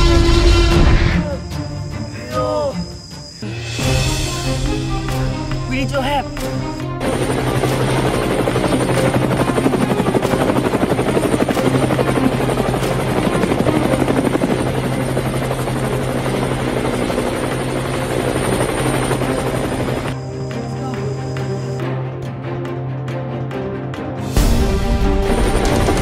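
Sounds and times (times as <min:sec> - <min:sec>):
background music: 0:00.0 - 0:26.0
helicopter rotor blades beating: 0:02.7 - 0:26.0.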